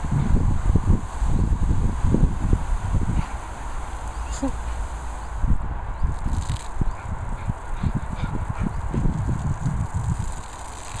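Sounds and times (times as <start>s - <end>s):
garden hose spraying water: 0.0s - 11.0s.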